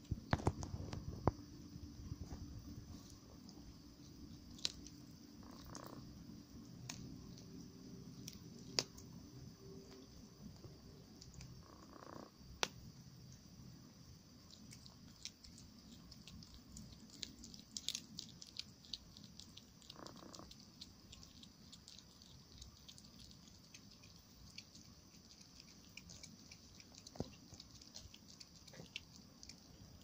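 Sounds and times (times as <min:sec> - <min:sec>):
cat chewing crunching: 0:02.2 - 0:06.0, 0:14.4 - 0:30.0.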